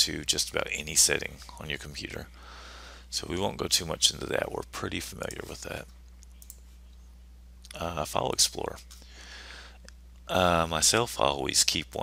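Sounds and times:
low electrical hum: 0.0 - 12.0
faint computer mouse click: 6.2 - 6.6.

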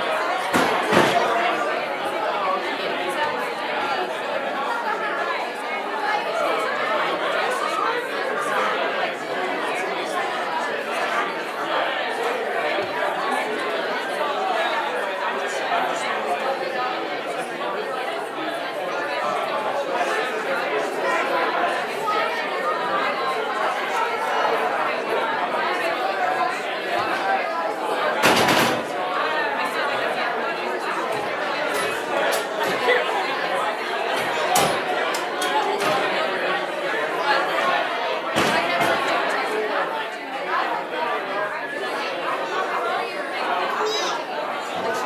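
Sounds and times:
overlapping conversations: 0.0 - 45.0.

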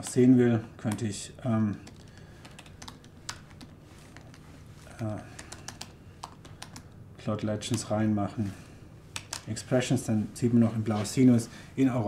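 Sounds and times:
typing on laptop keyboard: 1.7 - 4.5, 5.2 - 7.0, 9.2 - 9.5.

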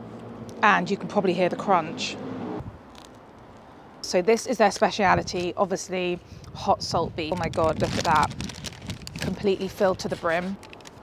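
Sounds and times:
faint street background: 0.0 - 11.0
bread crust crackling when torn: 7.4 - 11.0.

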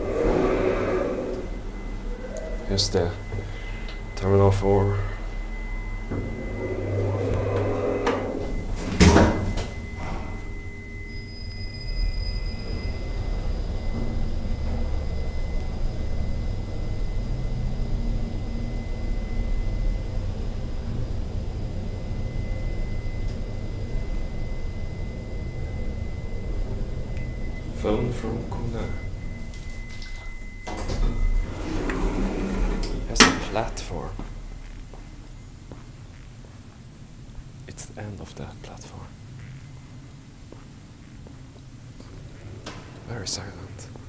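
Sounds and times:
elevator sliding doors running: 0.0 - 37.6, 39.2 - 44.0
low hum with high whine: 0.0 - 44.0.

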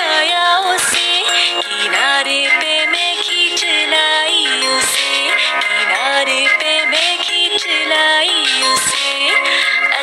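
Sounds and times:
backing music: 0.0 - 10.0
person singing: 0.0 - 10.0.

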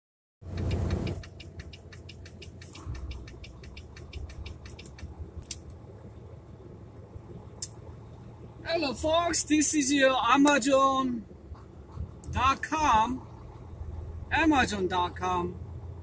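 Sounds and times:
truck idling rumble: 0.4 - 16.0
light ticks: 0.5 - 5.8.

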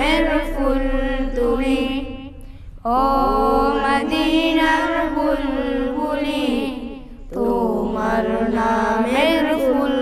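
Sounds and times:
boys singing together: 0.0 - 2.3, 2.9 - 10.0.

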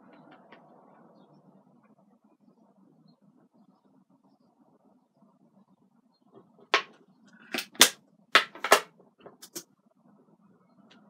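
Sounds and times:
makeup items knocking on desk: 6.8 - 7.0, 7.6 - 9.6.

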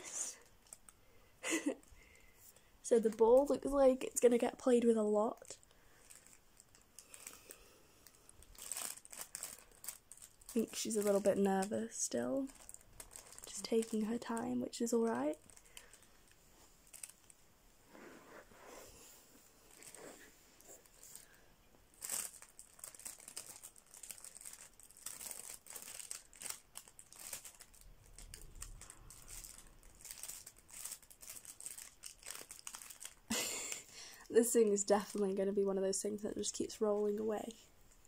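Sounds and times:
nylon tunnel crinkling: 2.8 - 35.7.

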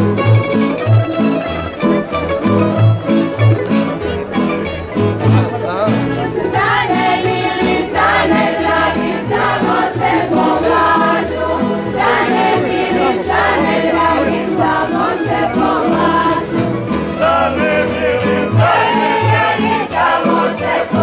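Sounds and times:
plucked string accompaniment: 0.0 - 21.0
women's group singing: 6.4 - 21.0.

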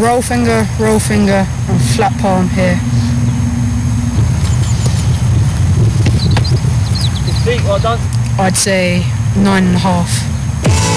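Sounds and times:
wind buffeting microphone: 0.0 - 10.6.

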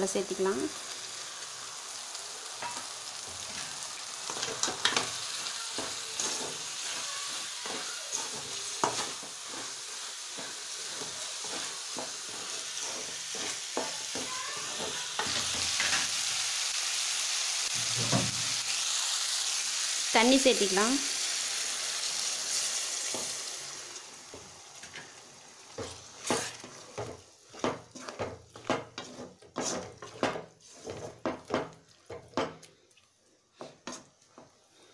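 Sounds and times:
meat sizzling in a metal pan: 0.0 - 32.6
wooden spatula scraping a pan: 2.6 - 16.2, 24.3 - 32.7, 33.5 - 34.9.

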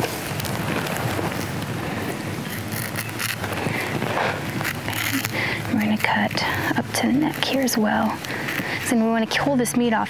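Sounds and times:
wind blowing on microphone: 0.0 - 10.0.

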